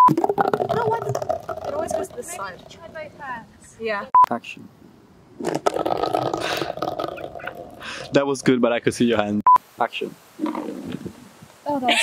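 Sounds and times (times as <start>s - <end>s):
metal can rolling on concrete: 0.2s - 2.8s.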